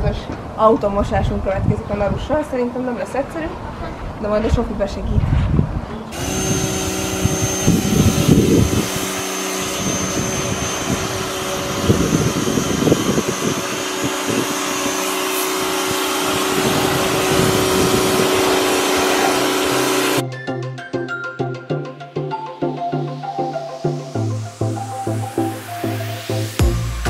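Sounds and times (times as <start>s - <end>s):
pressure washer running: 6.1s - 20.2s
water jet hissing: 6.2s - 20.2s.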